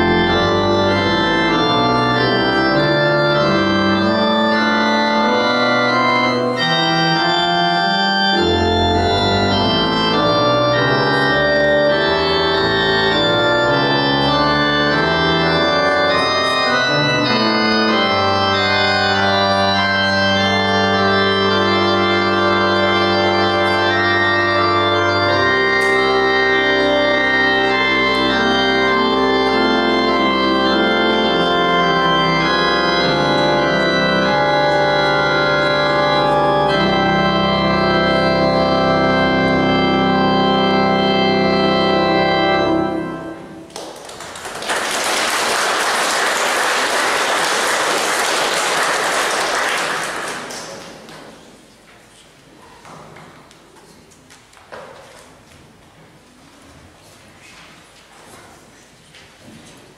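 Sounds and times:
organ playing sustained chords: 0.0s - 51.6s
audience applause: 43.7s - 51.4s.

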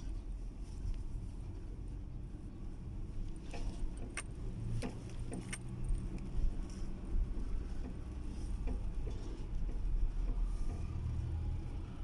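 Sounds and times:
car engine and road rumble: 0.0s - 12.0s
light clinks: 3.6s - 6.3s.

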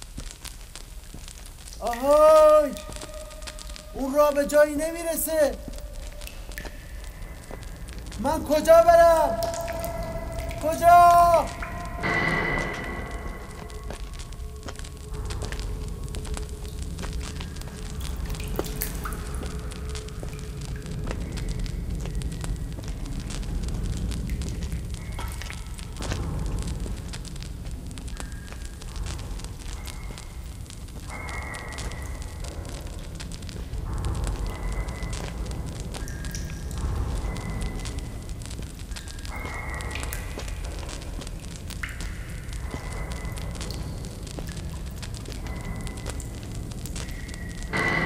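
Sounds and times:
torch flame rumbling and crackling: 0.0s - 1.8s, 5.7s - 8.3s, 11.5s - 48.0s.

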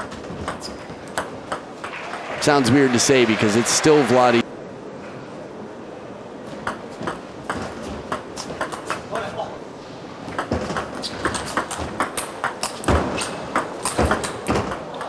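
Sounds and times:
table tennis ball clicking: 10.3s - 15.0s.

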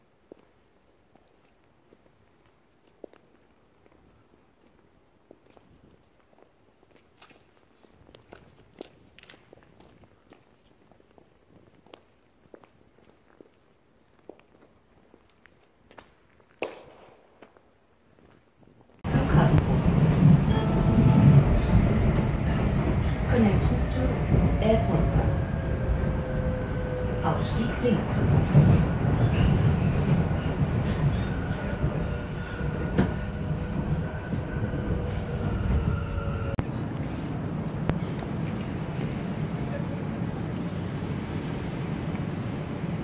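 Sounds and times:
metro car low rumble: 19.0s - 43.0s.

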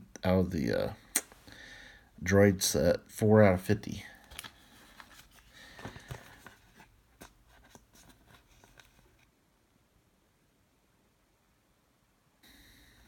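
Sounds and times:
trading card handled in fingers: 4.2s - 9.2s.

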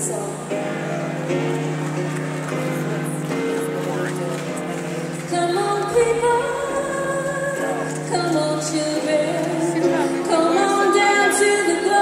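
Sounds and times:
live music slow sustained chords: 0.0s - 12.0s.

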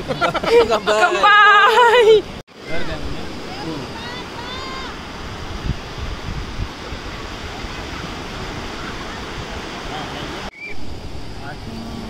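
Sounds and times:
beach surf: 0.0s - 12.0s
wind on microphone: 2.6s - 12.0s.

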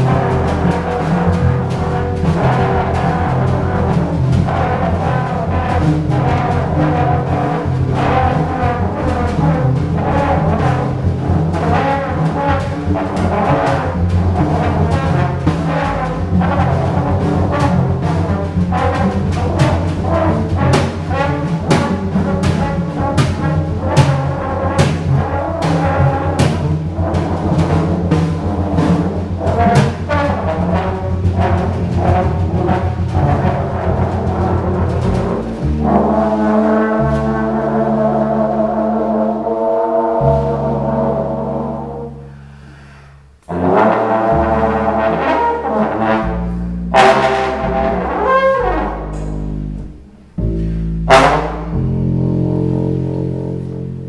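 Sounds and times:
drum kit playing: 0.0s - 39.6s, 43.4s - 54.0s
trombone playing: 0.0s - 42.4s, 43.4s - 54.0s
upright double bass: 0.0s - 54.0s.

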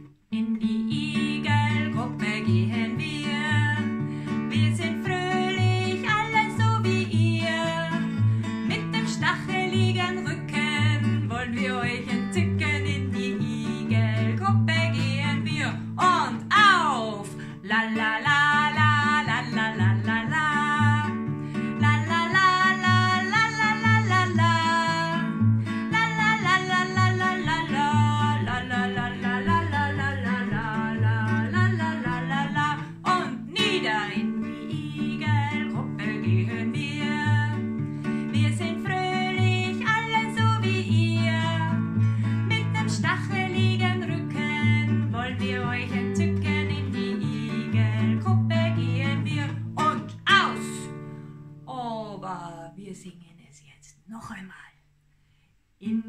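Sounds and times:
woman singing children's song: 0.0s - 51.0s, 51.6s - 54.8s
classical guitar: 0.0s - 51.7s.

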